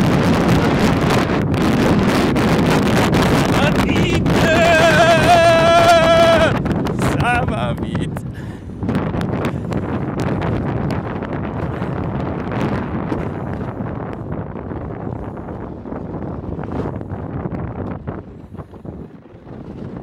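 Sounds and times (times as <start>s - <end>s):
wind rushing over microphone: 0.0s - 20.0s
toboggan running down icy chute: 3.6s - 7.5s.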